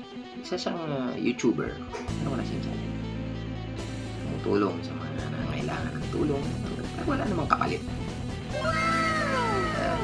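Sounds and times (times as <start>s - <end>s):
background music sustained notes: 0.0s - 10.0s.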